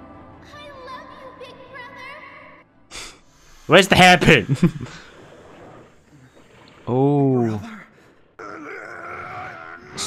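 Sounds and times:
monster groaning: 8.4s - 10.0s.

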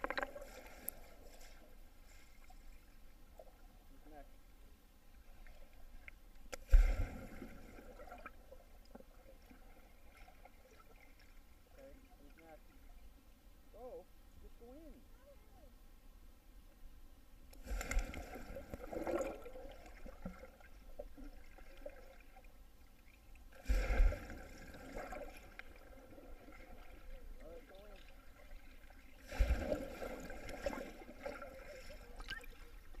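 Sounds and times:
muffled underwater plunges: 28.6s - 33.0s.

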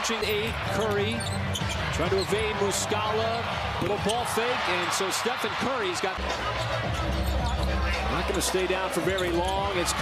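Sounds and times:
basketball court noise: 0.0s - 10.0s
crowd noise: 0.0s - 10.0s.

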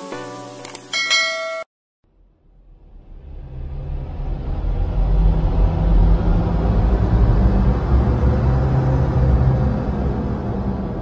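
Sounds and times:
music jingle: 0.0s - 1.7s
bright bell chime: 0.9s - 1.7s.

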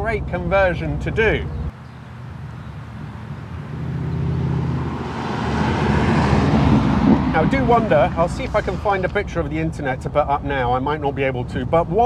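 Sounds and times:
car engine approaching: 0.0s - 12.0s.

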